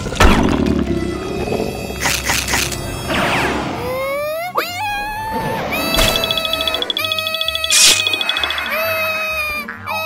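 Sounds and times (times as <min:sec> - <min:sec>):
cartoon voice wailing in pain: 0:03.9 - 0:06.0.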